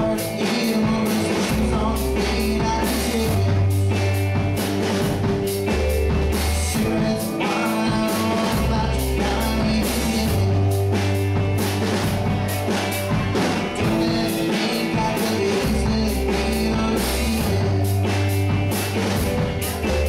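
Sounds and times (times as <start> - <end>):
drum kit beat: 0.0 - 20.0
electric bass long low notes: 0.0 - 20.0
electric guitar: 0.0 - 20.0.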